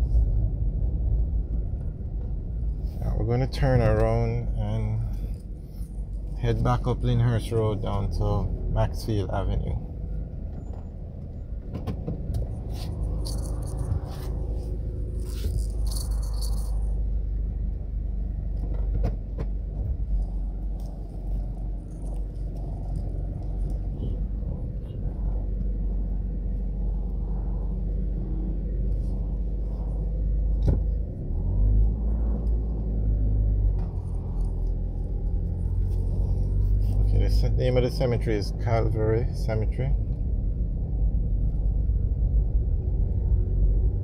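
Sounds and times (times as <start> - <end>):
road and engine rumble in car: 0.0 - 44.0.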